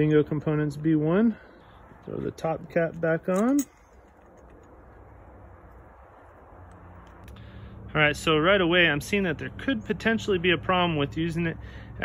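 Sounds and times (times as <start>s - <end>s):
faint background noise: 0.0s - 12.0s
low hum: 0.1s - 8.5s
light clicks of metal bike parts: 1.9s - 5.1s, 6.2s - 7.5s.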